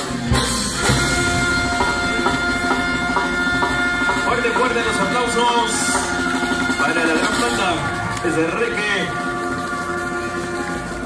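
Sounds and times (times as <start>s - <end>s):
brass band chord: 0.0s - 11.0s
man speaking: 4.2s - 6.0s, 6.8s - 9.2s.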